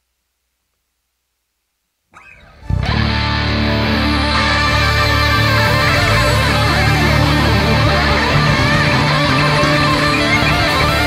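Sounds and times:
distorted electric guitars: 2.2s - 11.0s
hard rock band playing: 2.4s - 11.0s.

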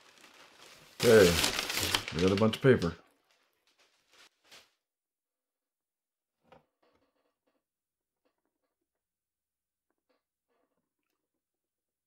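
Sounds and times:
rustling packing paper and cardboard: 0.0s - 4.8s.

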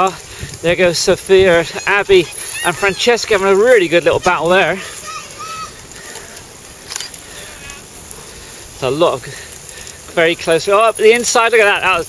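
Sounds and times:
bike freewheel hubs buzzing: 0.0s - 12.0s
wind rumble on microphone: 0.1s - 1.8s.

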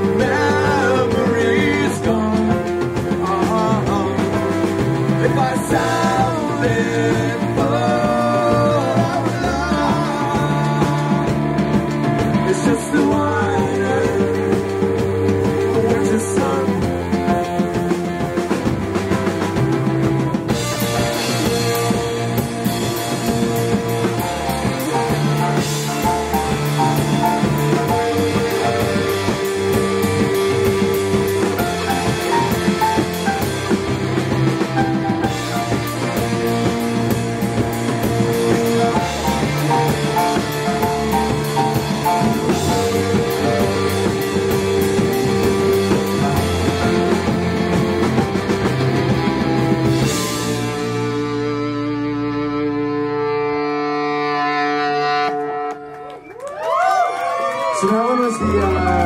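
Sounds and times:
rock band playing live: 0.0s - 59.0s.

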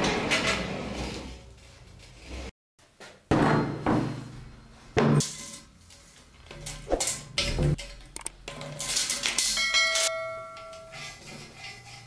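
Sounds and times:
ringing metal clang: 9.4s - 11.0s.

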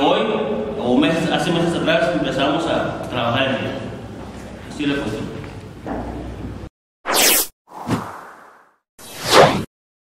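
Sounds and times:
full whoosh: 7.1s - 9.7s
whoosh falling in pitch: 7.1s - 9.7s.

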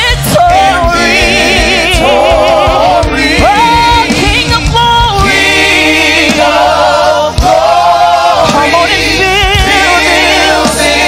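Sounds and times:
choir singing in harmony: 0.0s - 11.0s
instrumental backing: 0.0s - 11.0s.

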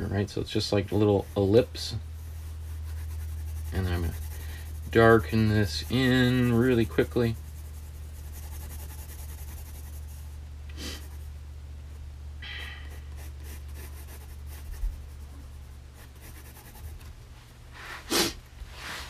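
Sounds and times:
steady low hum: 0.0s - 19.0s
pencil shading on paper: 2.2s - 11.3s, 12.9s - 17.0s.

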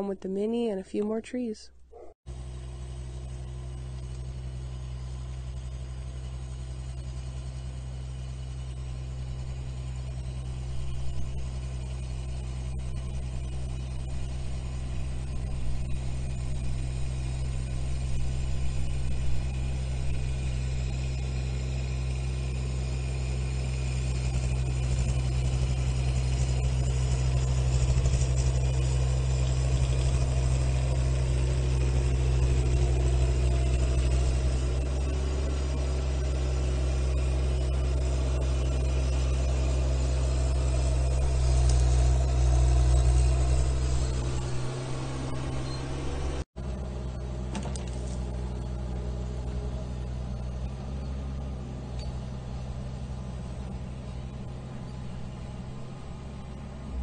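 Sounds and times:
mini excavator diesel engine running: 1.9s - 57.0s.

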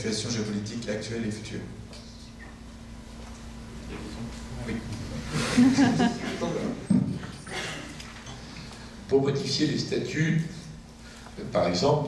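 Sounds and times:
man laughing: 5.3s - 6.8s.

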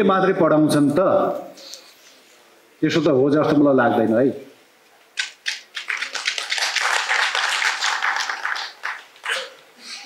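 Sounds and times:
audience applauding: 5.5s - 9.6s.

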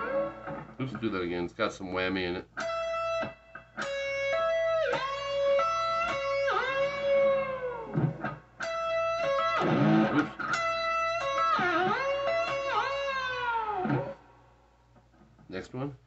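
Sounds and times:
electric guitar solo with whammy dips: 0.0s - 1.2s, 2.5s - 14.4s.

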